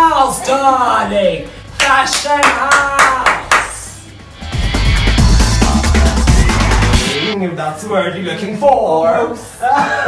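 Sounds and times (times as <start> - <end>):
hands clapping sharply: 1.8 - 3.8.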